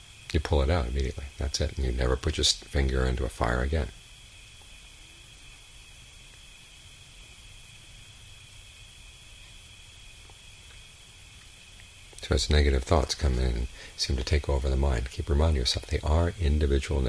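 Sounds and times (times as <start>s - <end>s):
low hum and hiss: 0.0s - 17.0s.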